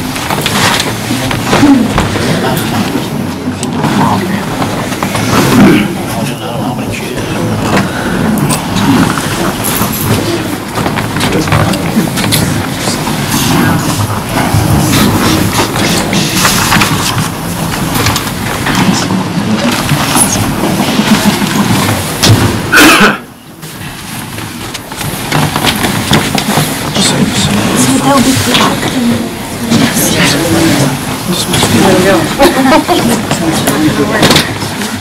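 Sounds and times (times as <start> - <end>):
crowd murmur: 0.0 - 17.6.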